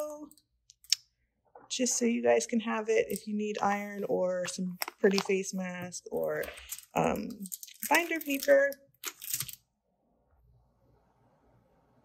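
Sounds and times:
packaging rustling: 3.6s - 9.6s.

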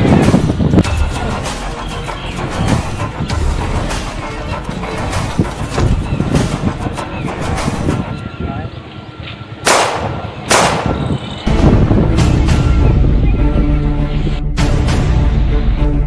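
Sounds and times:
background music: 0.0s - 16.0s
gunshot sound effects: 9.7s - 11.1s.

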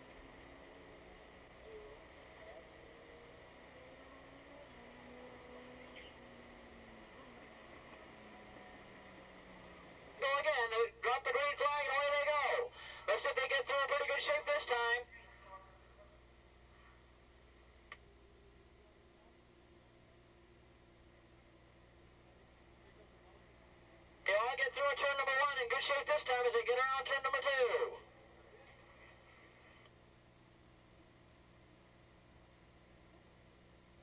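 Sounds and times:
low drone falling in pitch: 0.0s - 10.2s.

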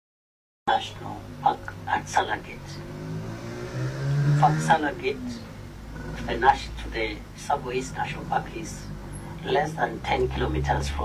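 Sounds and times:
man saying uhh: 6.0s - 6.8s.

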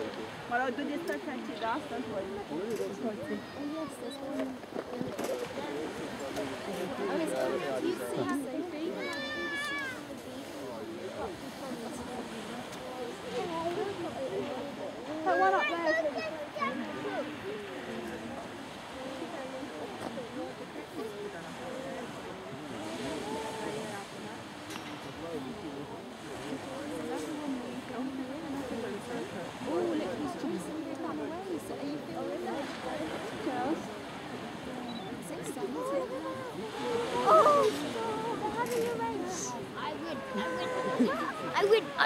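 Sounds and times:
people talking: 0.0s - 42.0s
surf: 0.0s - 42.0s.

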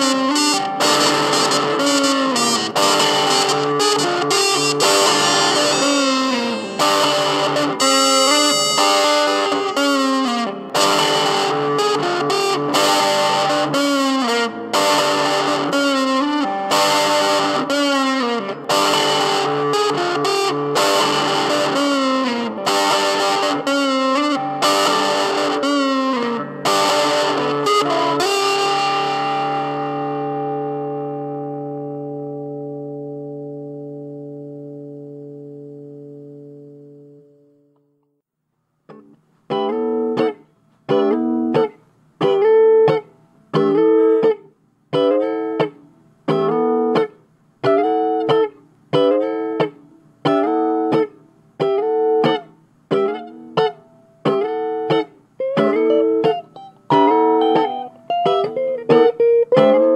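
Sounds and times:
distorted electric guitar: 0.0s - 37.8s, 38.9s - 59.9s.

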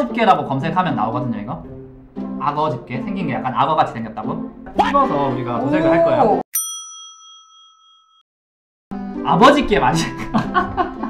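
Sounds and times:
bell-like ding: 6.5s - 8.2s.

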